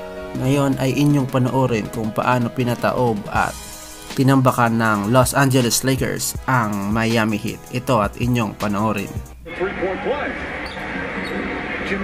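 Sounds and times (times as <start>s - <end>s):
basketball court ambience: 10.4s - 11.9s.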